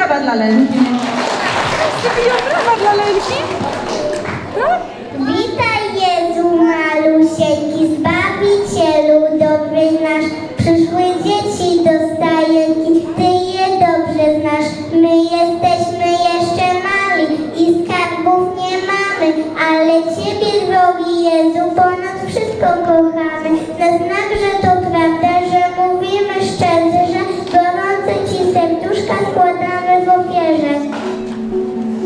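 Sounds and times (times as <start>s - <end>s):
girl singing a carol: 6.4s - 30.9s.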